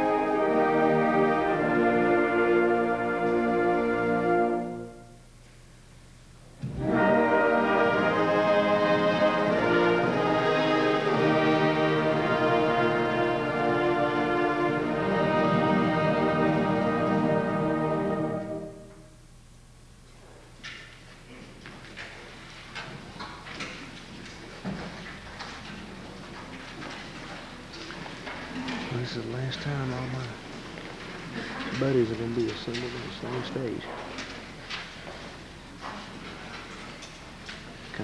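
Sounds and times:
concert band playing held chords: 6.6 - 18.8.

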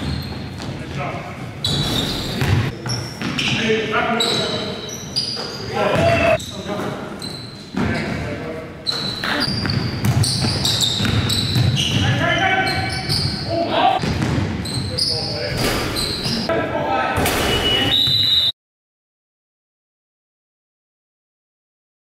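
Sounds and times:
basketball bouncing on court: 1.7 - 3.6, 8.9 - 12.2, 14.0 - 14.9
players' voices and shouts: 5.5 - 6.9, 11.7 - 14.0.

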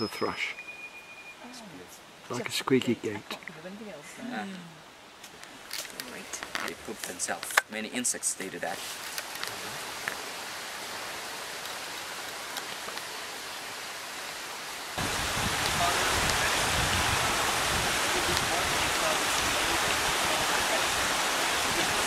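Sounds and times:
outdoor ambience hiss: 0.0 - 22.0
running water rushing: 1.4 - 22.0.

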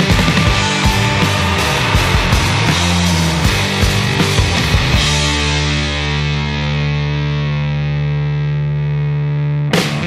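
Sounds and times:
distorted electric guitar chord: 0.0 - 10.0
rock band with drums: 0.0 - 10.0.

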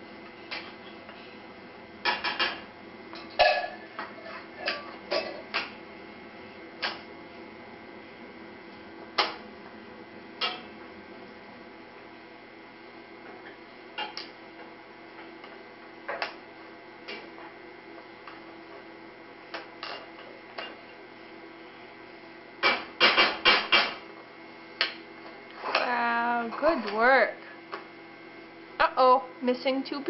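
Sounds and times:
steady low hum: 0.0 - 30.0.

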